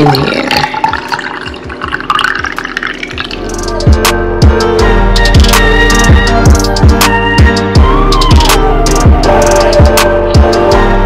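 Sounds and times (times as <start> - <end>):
water pouring through funnel: 0.0 - 3.5
background music with drum beat: 3.2 - 10.9.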